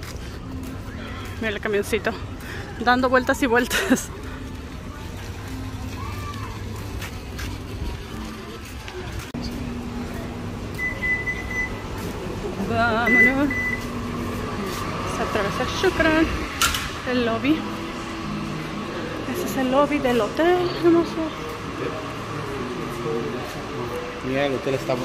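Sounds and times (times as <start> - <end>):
outdoor background noise: 0.0 - 25.0
metal detector beeping: 10.8 - 11.8, 13.1 - 13.9.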